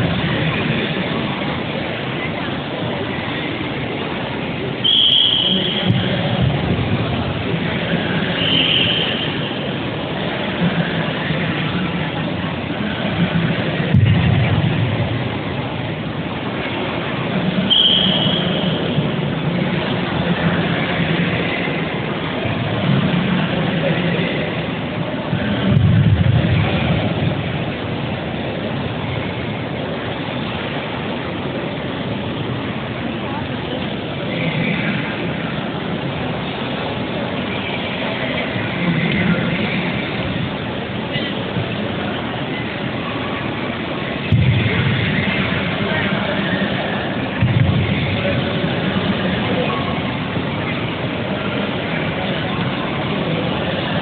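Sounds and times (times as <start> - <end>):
indistinct voices: 0.0 - 54.0
sports hall background noise: 0.0 - 54.0.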